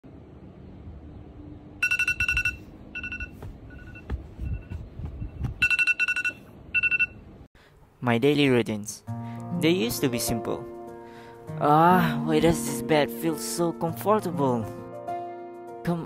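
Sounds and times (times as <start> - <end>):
phone alarm two-tone beeps: 1.8 - 4.8, 5.6 - 7.2.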